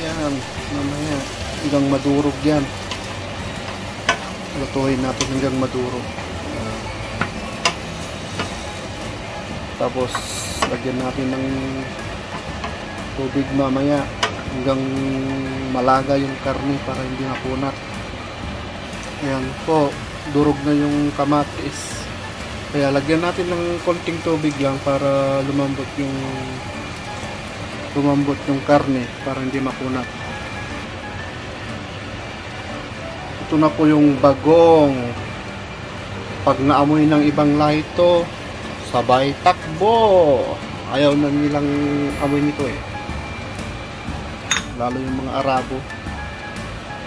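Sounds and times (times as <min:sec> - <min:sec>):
background music: 0:00.0 - 0:47.0
tomatoes sizzling in a pan: 0:00.0 - 0:47.0.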